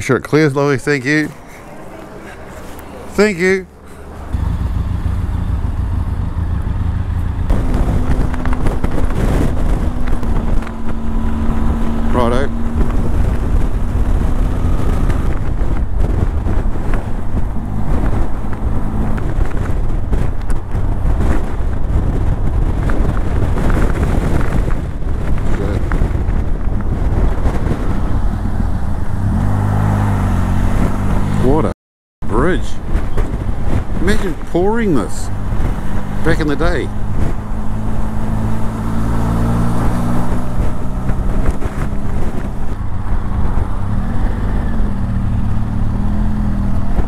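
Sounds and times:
wind buffeting microphone: 0:00.0 - 0:47.0
motorcycle engine running: 0:02.8 - 0:29.1.

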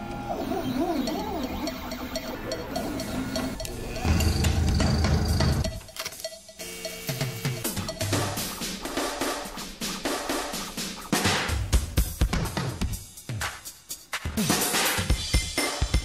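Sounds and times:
stepper motors whining: 0:00.0 - 0:09.0.

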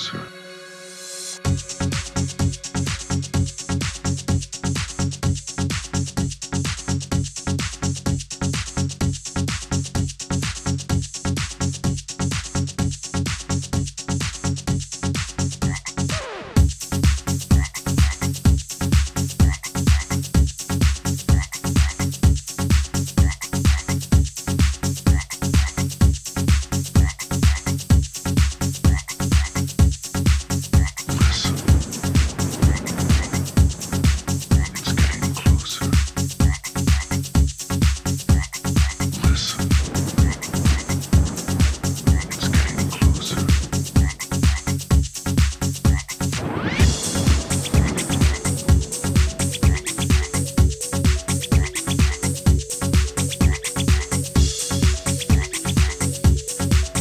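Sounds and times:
electronic dance music: 0:00.0 - 0:06.1, 0:15.1 - 0:57.0
loud kick drum beat: 0:01.5 - 0:57.0
croaking frog-like sounds: 0:15.6 - 0:16.6, 0:17.4 - 0:18.4, 0:19.4 - 0:20.4, 0:21.2 - 0:22.2, 0:23.1 - 0:24.1, 0:25.1 - 0:26.0, 0:27.0 - 0:27.9, 0:28.9 - 0:29.8, 0:30.6 - 0:37.4, 0:38.2 - 0:44.9, 0:45.8 - 0:57.0
synth sweep: 0:31.1 - 0:36.0, 0:39.1 - 0:44.3, 0:46.4 - 0:53.4.

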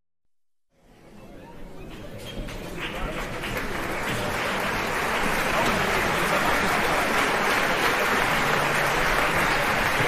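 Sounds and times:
audience applauding: 0:02.7 - 0:10.0.

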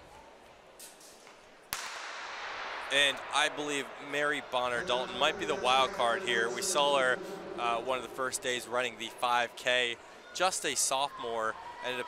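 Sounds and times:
starting pistol shot: 0:01.8 - 0:03.1
crowd noise: 0:02.8 - 0:12.0.

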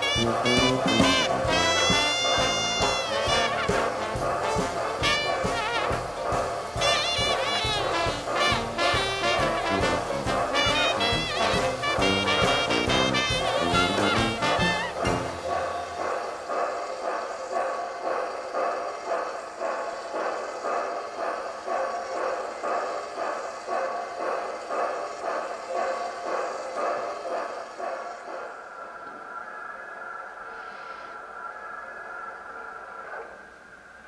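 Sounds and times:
steam engine exhaust chuffs: 0:00.0 - 0:17.6.

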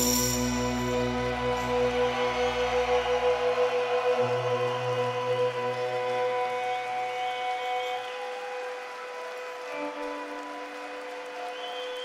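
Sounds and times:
drone: 0:00.0 - 0:06.6.

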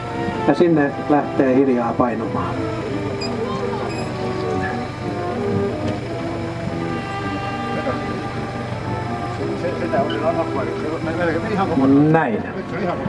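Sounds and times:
background music with held notes: 0:00.0 - 0:13.0.

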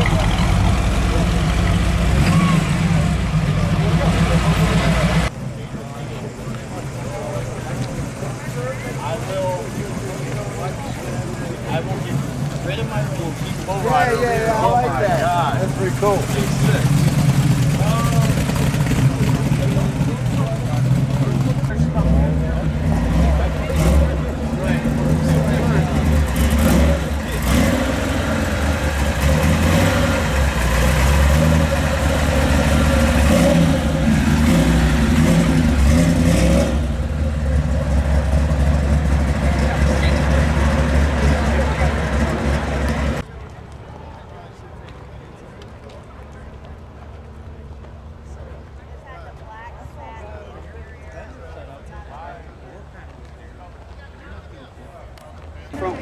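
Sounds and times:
car engine running loud and deep: 0:00.0 - 0:43.3
car engine rolling by: 0:00.0 - 0:43.6.

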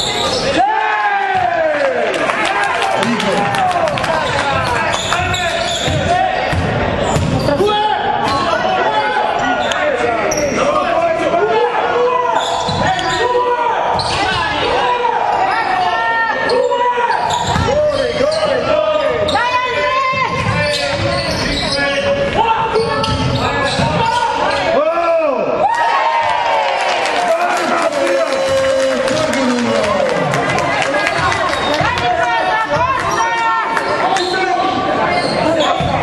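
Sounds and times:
sneakers squeaking on court: 0:04.2 - 0:07.6, 0:12.4 - 0:13.2, 0:16.4 - 0:19.4, 0:20.2 - 0:24.7, 0:32.8 - 0:36.0
basketball bouncing: 0:05.2 - 0:07.5.

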